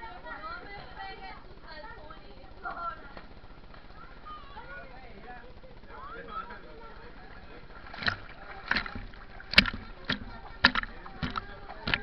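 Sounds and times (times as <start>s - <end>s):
pool water splashing: 6.8s - 12.0s.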